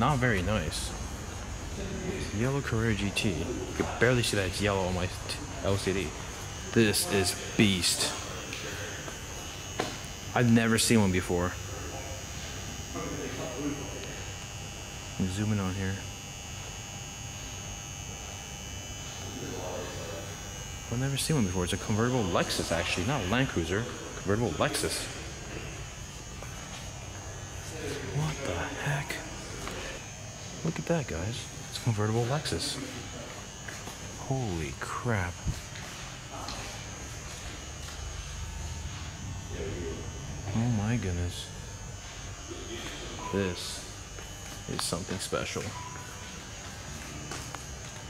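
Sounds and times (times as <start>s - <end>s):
electrical hum with high whine: 0.0s - 48.0s.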